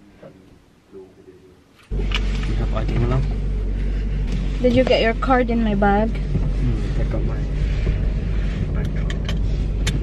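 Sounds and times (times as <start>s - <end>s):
car engine idling: 1.9s - 10.0s.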